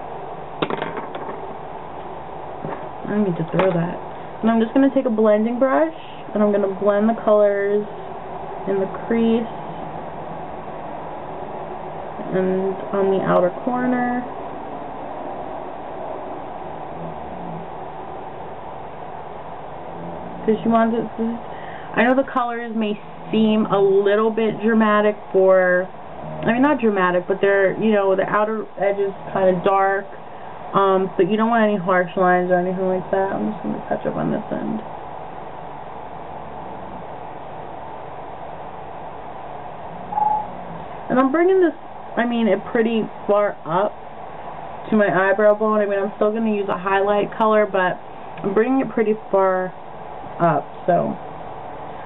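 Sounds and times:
room noise hiss: 0.0s - 52.0s
brief hum: 26.2s - 26.6s, 39.9s - 41.0s.

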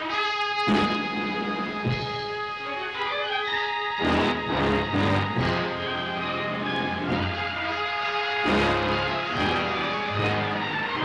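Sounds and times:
brass sustained chords: 0.0s - 11.0s
low drum strikes: 1.6s - 2.3s.

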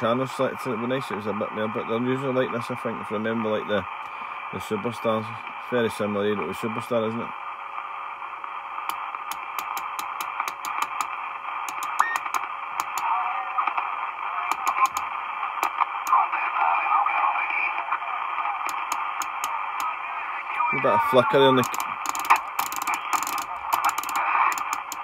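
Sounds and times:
radio static hiss: 0.0s - 25.0s
channel selector clicks: 8.9s - 11.1s.

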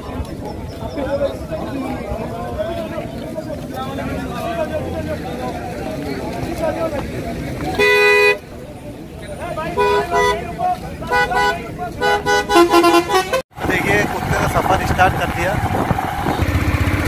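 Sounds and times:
crowd chatter: 0.0s - 17.0s
vehicle horn blasts and toots: 7.8s - 8.4s, 9.8s - 10.4s, 11.1s - 13.4s.

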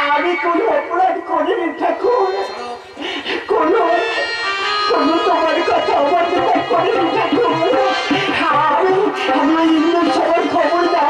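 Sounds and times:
musical accompaniment: 1.9s - 11.0s.

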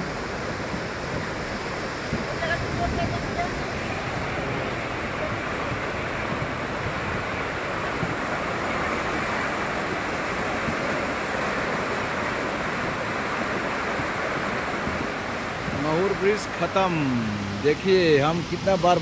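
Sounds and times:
floodwater rushing: 0.0s - 19.0s.

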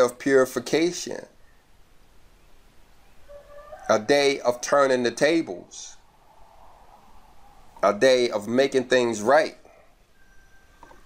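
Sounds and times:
man speaking: 0.0s - 1.4s, 3.9s - 6.0s, 7.8s - 9.7s.

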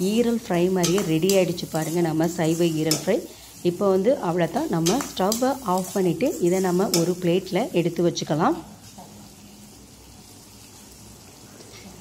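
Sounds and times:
woman talking: 0.0s - 8.7s
gravy sizzling in a pan: 0.0s - 12.0s.

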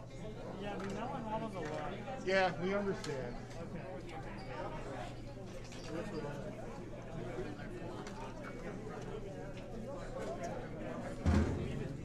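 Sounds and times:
background chatter of voices: 0.0s - 12.0s.

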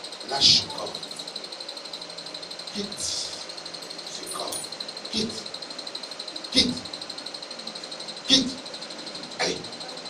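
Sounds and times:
faint electrical whine: 0.0s - 10.0s.

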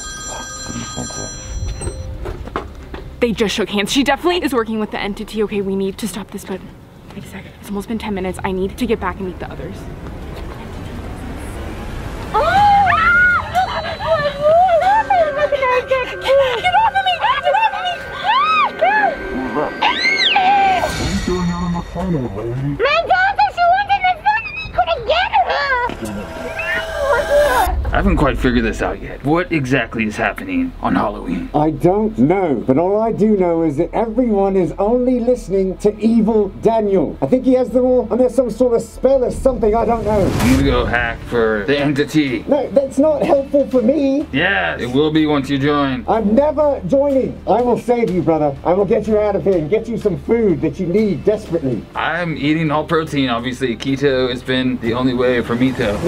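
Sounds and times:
bell-like ringing tones: 0.0s - 2.2s, 13.3s - 24.4s, 25.1s - 28.2s
low rumble: 25.0s - 30.9s, 39.0s - 42.5s.

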